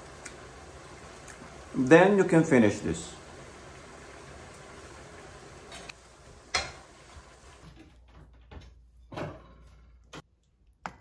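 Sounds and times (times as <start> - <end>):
steady low hiss: 0.0 - 7.7.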